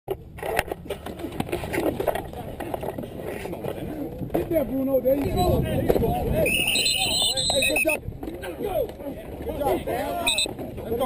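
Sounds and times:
people calling out: 6.4 - 8.0, 10.0 - 10.5.

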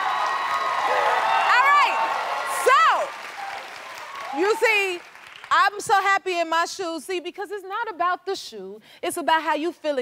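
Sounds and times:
audience applauding and cheering: 0.0 - 5.8.

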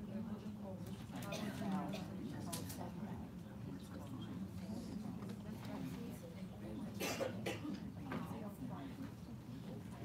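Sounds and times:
murmur of voices: 0.0 - 10.0
person coughing: 7.0 - 7.7.

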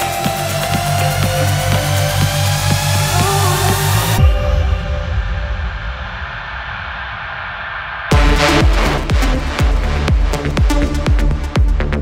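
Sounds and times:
low rumble: 1.3 - 11.6.

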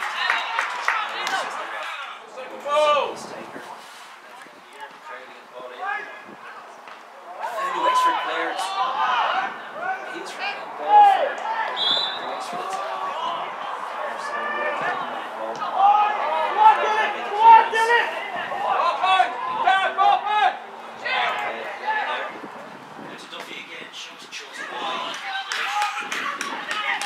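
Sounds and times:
players shouting: 0.0 - 3.2, 5.8 - 22.5, 24.5 - 27.0.

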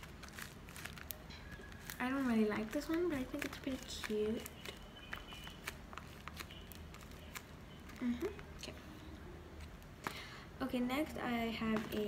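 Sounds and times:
paper squishy crinkling clicks: 0.0 - 8.4.

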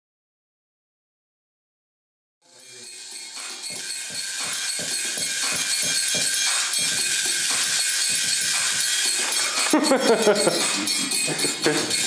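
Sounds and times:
bright hissy high percussion: 2.4 - 12.0
electronic music with steady beat: 2.4 - 12.0.

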